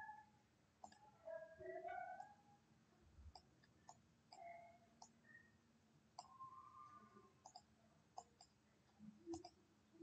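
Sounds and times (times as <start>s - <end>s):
computer mouse clicks: 0.8s - 1.0s, 3.3s - 5.2s, 6.1s - 6.4s, 7.4s - 9.6s.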